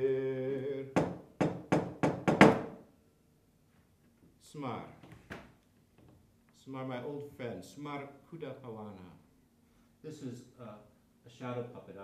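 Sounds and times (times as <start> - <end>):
sharp rhythmic knocks: 1.0 - 2.7.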